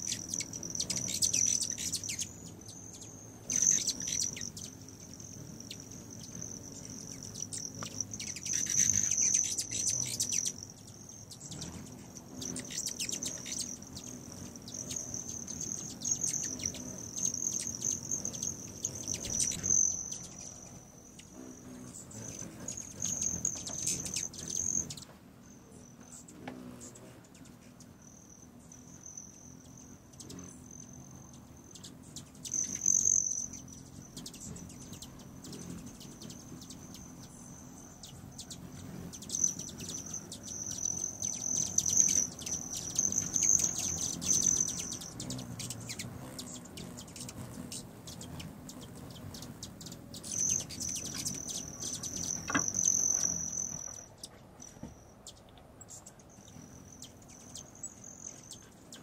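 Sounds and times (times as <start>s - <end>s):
hummingbird chip calls: 0.0s - 59.0s
hummingbird wing trill: 0.0s - 59.0s.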